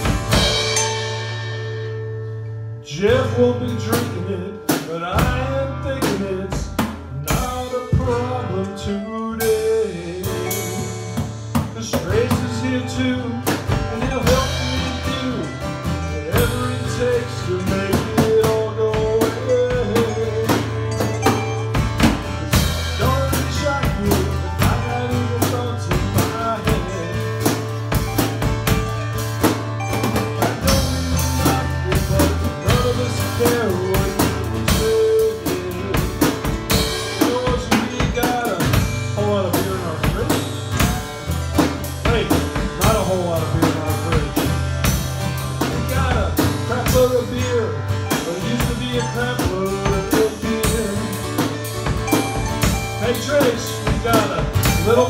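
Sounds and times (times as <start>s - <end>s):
acoustic guitars strumming: 0.0s - 55.0s
drum kit beat: 0.0s - 55.0s.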